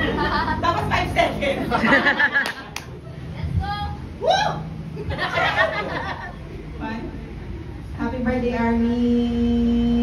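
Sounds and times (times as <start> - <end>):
people laughing: 0.0 - 3.3, 4.9 - 6.6.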